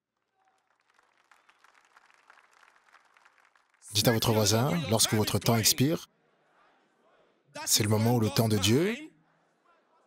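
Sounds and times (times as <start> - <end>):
faint distant applause: 0.2 - 5.1.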